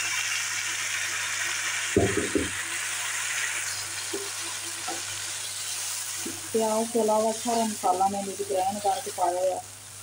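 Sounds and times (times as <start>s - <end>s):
meat sizzling in a wok: 0.0s - 10.0s.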